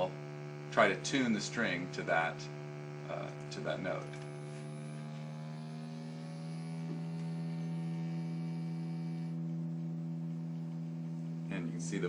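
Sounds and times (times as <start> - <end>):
sustained ebow guitar tone: 0.0 - 12.0.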